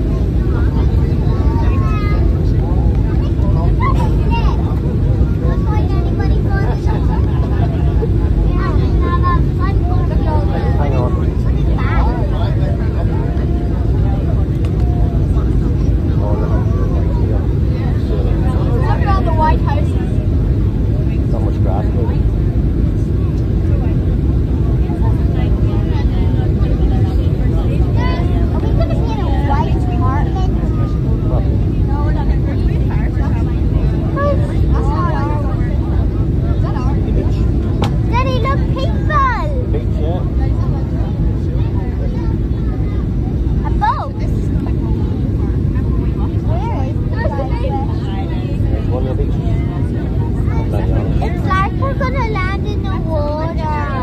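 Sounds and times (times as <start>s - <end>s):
faint indistinct voices: 0.0s - 54.0s
jet engine rumble in cabin: 0.0s - 54.0s.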